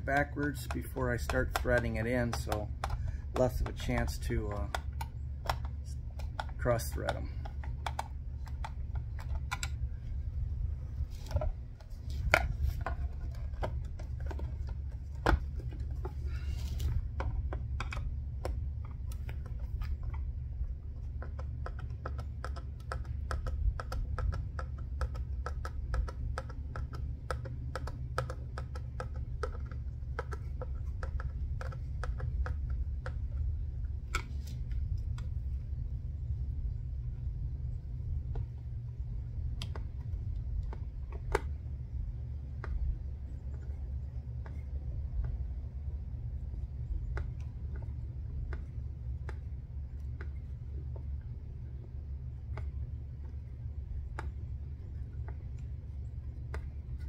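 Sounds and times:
low rumble: 0.0 - 22.0, 29.2 - 57.0.

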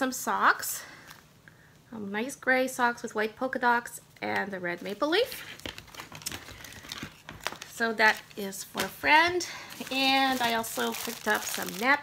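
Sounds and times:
plastic crinkling and rustling: 4.3 - 12.0.

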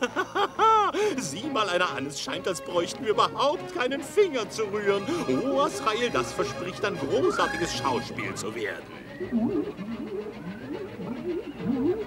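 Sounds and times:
man's low gloating laugh: 0.0 - 1.3.

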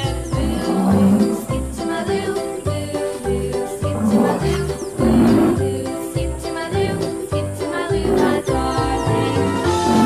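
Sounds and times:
rhinoceros growling call: 0.0 - 2.6, 3.5 - 5.8, 7.8 - 10.0
cheerful background music: 0.0 - 10.0.

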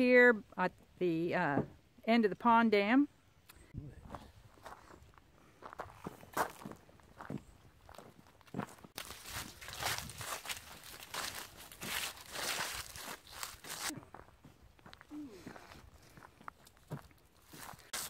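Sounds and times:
footsteps crunching dry leaves: 5.8 - 14.3, 14.9 - 18.0.

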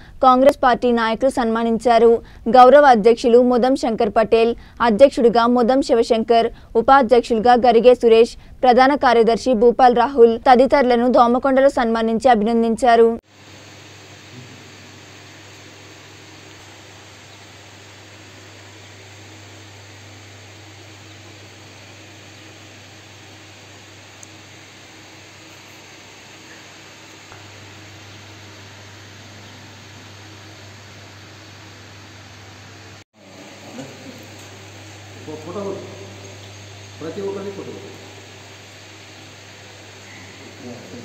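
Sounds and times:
low electrical hum: 0.0 - 41.0
steady hiss: 13.2 - 41.0.

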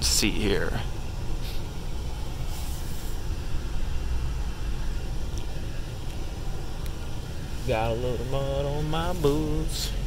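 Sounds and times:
diesel truck engine rumble: 0.0 - 10.0.

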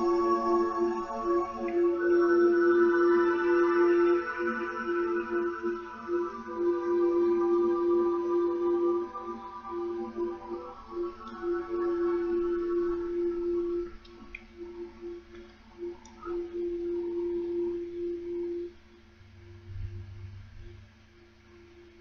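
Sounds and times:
wavering drone tone: 0.0 - 22.0.

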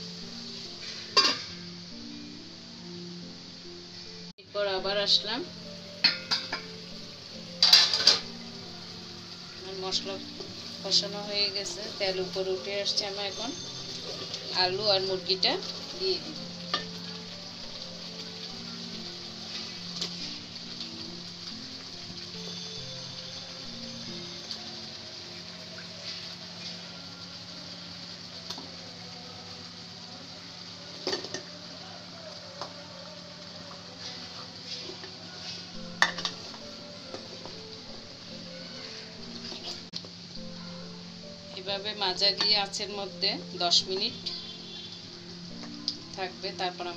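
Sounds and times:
paste sizzling in a pot: 0.0 - 46.9.

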